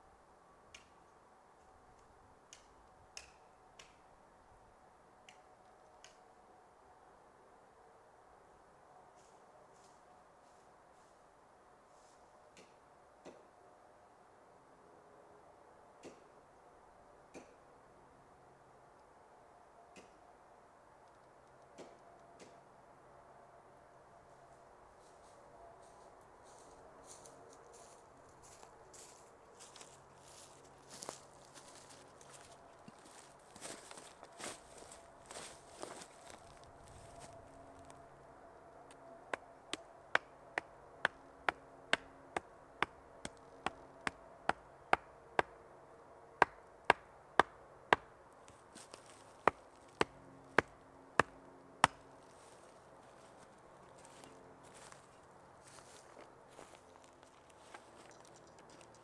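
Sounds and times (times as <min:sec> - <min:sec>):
rustling in leaf litter: 0:27.1 - 0:38.0.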